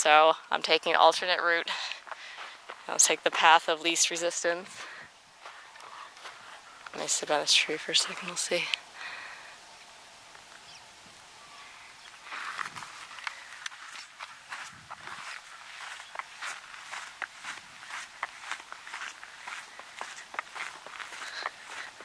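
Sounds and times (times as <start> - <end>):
footsteps on wet dirt: 0.1 - 8.8, 12.0 - 22.0.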